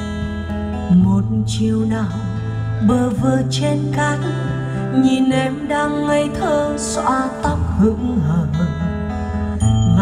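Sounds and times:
recorded song over loudspeakers: 0.0s - 10.0s
steady bass: 7.4s - 10.0s.

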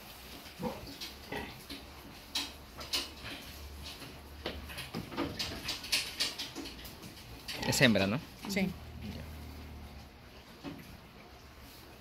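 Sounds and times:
pig grunting: 7.4s - 10.2s.

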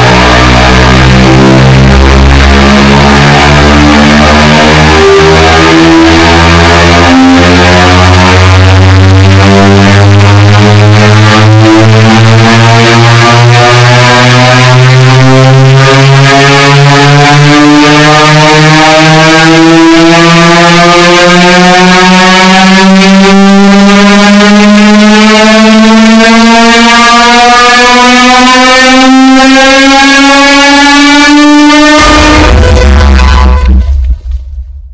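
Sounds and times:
distorted electric guitar rising: 0.0s - 34.9s.

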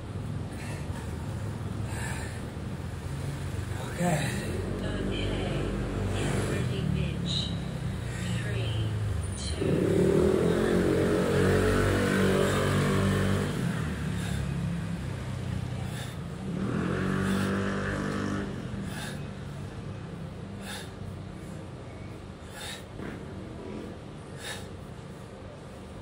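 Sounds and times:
low traffic rumble: 0.0s - 26.0s
vehicle engines revving: 0.0s - 26.0s.

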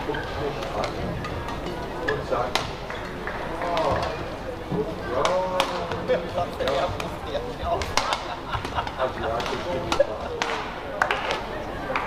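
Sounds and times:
indoor hall noise: 0.0s - 12.0s.

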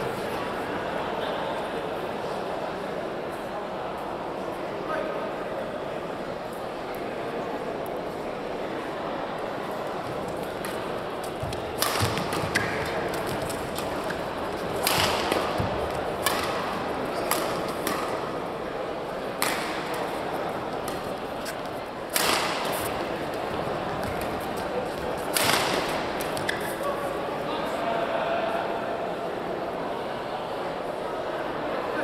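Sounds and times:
murmur of voices in a hall: 0.0s - 32.0s
badminton racket hitting shuttlecock: 10.6s - 18.2s, 22.1s - 23.2s.

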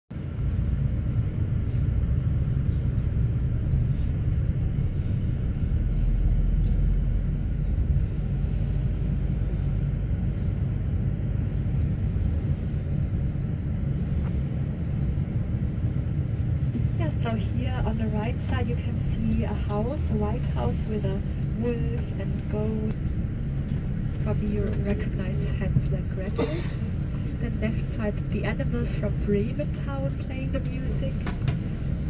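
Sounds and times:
bus road and engine rumble: 0.1s - 32.0s.

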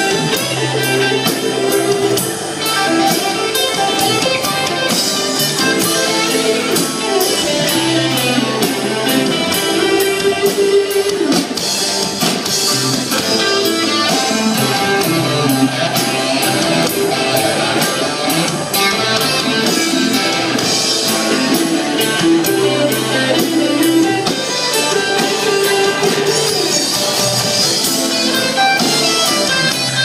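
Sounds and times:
bass guitar: 0.0s - 30.0s
drum kit beat: 0.0s - 30.0s
electric guitars: 0.0s - 30.0s.

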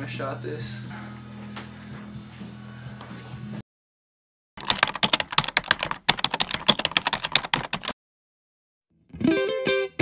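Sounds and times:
typing on a keyboard: 4.6s - 8.0s.

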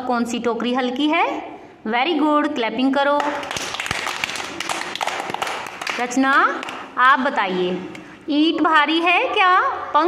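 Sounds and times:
group applauding: 3.2s - 6.9s.

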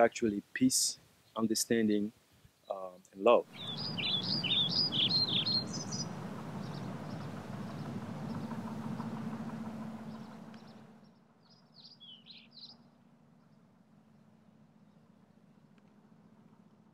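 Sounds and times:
birds chirping: 2.6s - 12.8s
steady low hum: 2.8s - 11.4s.

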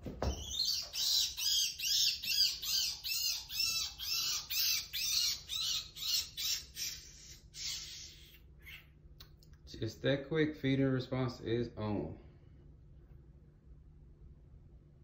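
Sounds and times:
rabbit screaming: 0.4s - 9.0s.

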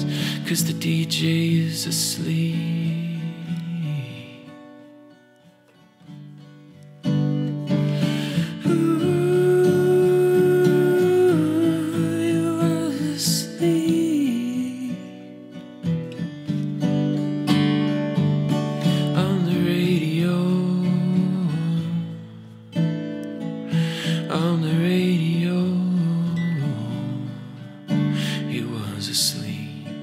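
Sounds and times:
acoustic guitar strumming: 0.0s - 30.0s
wordless hummed vocal melody: 8.4s - 15.0s.

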